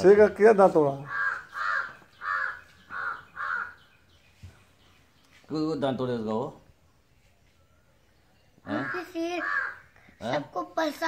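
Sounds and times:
crow cawing: 1.0 - 3.9, 8.7 - 10.2.

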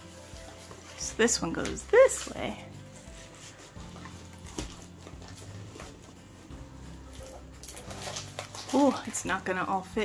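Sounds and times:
canvas and plastic film crinkling: 0.0 - 10.0.

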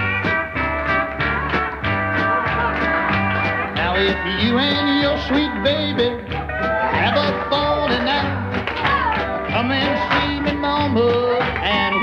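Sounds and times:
country band playing: 0.0 - 12.0.

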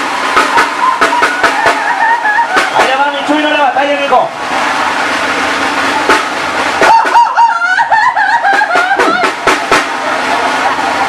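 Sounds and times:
sharp percussion hits: 0.0 - 7.5, 8.4 - 10.6.

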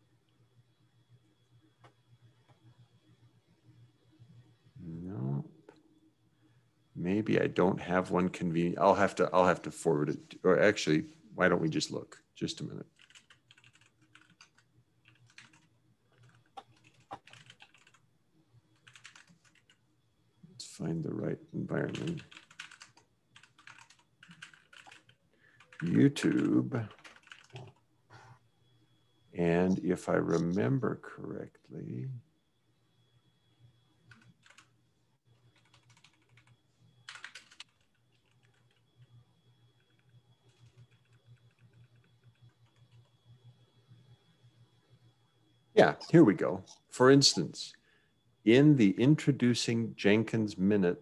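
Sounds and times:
typing on computer keyboard: 13.0 - 18.0, 18.8 - 19.8, 21.9 - 27.8, 34.1 - 34.7, 35.4 - 39.0, 39.8 - 43.1.

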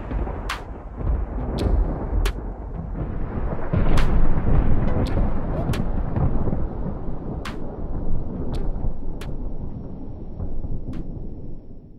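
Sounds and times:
sharp thunder cracks: 0.0 - 11.5
deep thunder rumble: 0.0 - 11.9.

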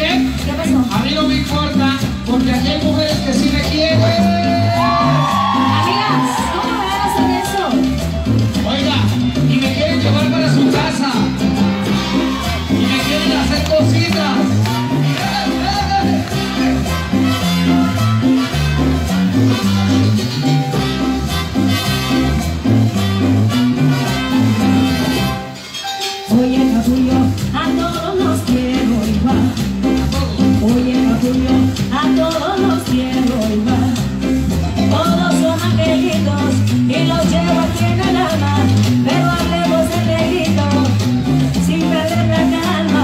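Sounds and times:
bass line: 0.0 - 25.7, 26.3 - 43.0
live cumbia band playing: 0.0 - 43.0.

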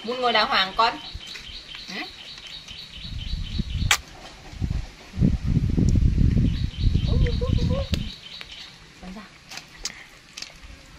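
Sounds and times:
faint birds chirping: 0.0 - 4.2, 6.4 - 10.1
wind buffeting on microphone: 2.9 - 8.2.

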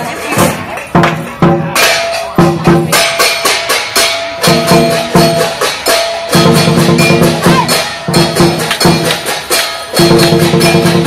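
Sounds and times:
drums and clashing cymbals: 0.0 - 11.0.

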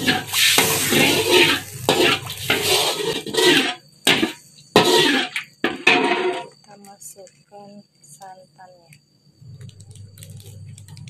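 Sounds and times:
metal spatula stirring: 0.0 - 6.6
spice paste sizzling in a wok: 0.0 - 6.6.

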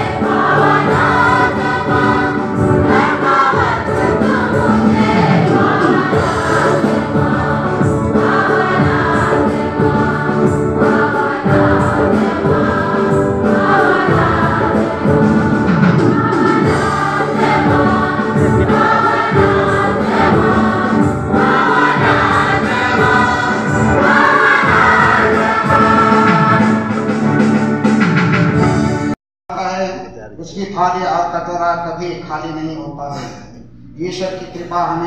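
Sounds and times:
choir singing a hymn: 0.0 - 29.1
instrumental accompaniment: 0.0 - 29.2.

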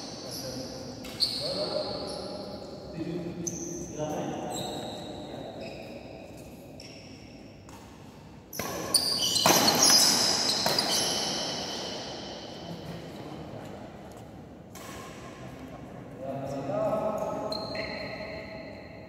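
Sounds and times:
sneakers squeaking on court: 0.1 - 2.6, 3.4 - 12.4, 17.5 - 18.8
racket hitting shuttlecock: 7.6 - 11.9, 14.7 - 15.4.

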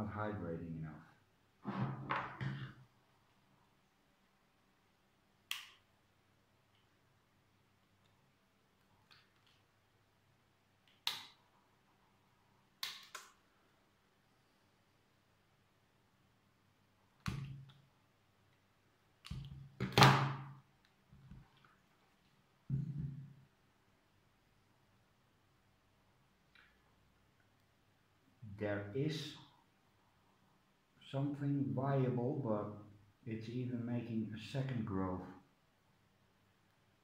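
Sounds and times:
sharp snap: 11.0 - 11.4, 12.8 - 13.4
dull thump on table: 22.7 - 23.3.

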